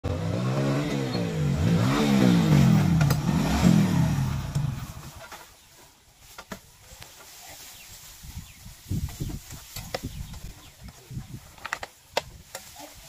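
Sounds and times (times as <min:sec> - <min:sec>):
motorcycle engine revving: 0:00.0 - 0:05.4.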